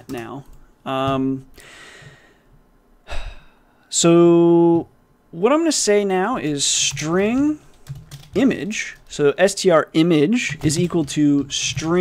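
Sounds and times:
man breathing: 0:01.5 - 0:03.9.

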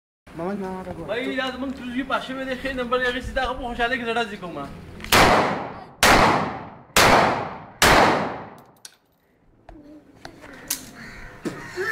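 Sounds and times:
handgun shots echoing: 0:05.1 - 0:08.8.

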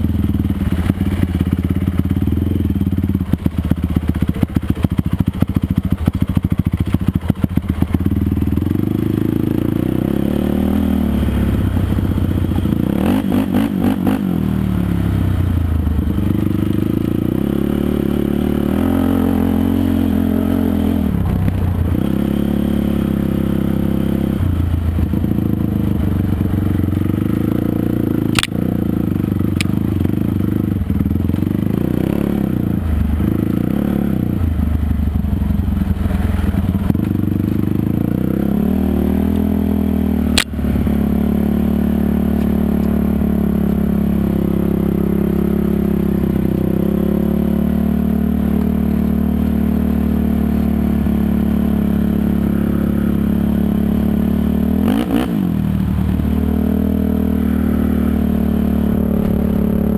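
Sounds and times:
quad bike engine revving: 0:00.0 - 0:59.9.

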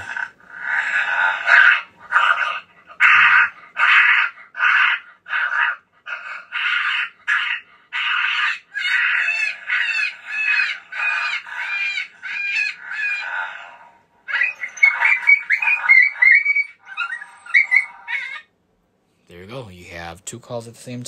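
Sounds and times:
recorded rabbit distress call: 0:00.0 - 0:18.6.

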